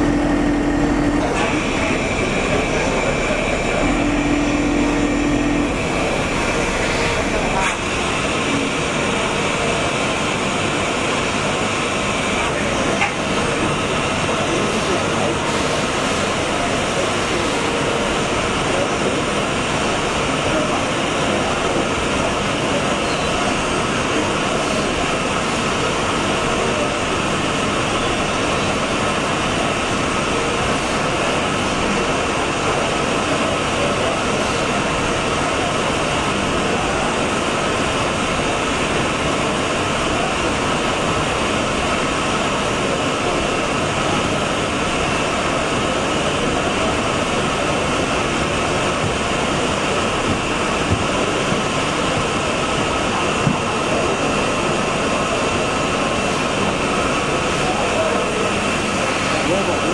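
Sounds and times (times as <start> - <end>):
lathe mechanical whirr: 0.0 - 59.9.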